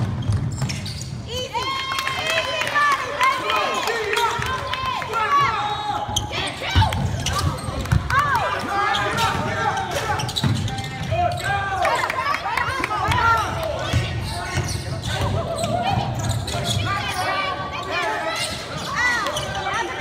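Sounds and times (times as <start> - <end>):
sneakers squeaking on gym floor: 0.0 - 1.5, 5.3 - 12.1, 13.8 - 20.0.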